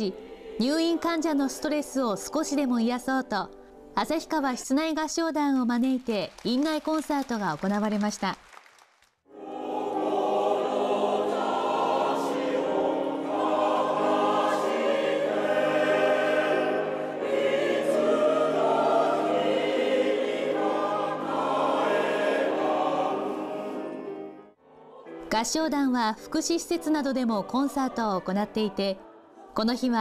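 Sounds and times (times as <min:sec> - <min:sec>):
mixed choir singing in harmony: 0:00.0 - 0:02.5, 0:09.3 - 0:25.5, 0:26.6 - 0:30.0.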